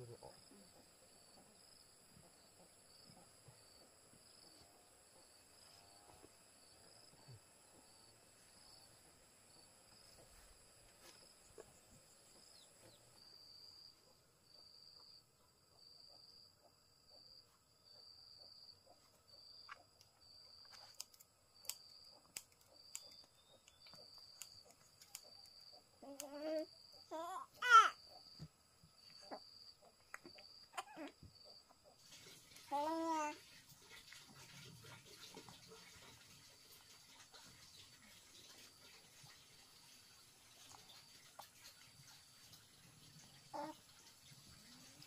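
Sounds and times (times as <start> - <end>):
insect high chirp: 0.0 - 45.0.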